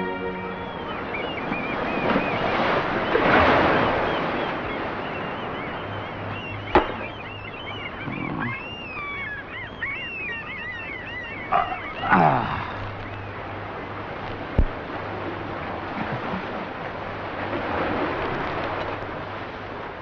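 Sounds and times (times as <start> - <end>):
birds chirping: 0.0 - 20.0
sea surf: 0.0 - 20.0.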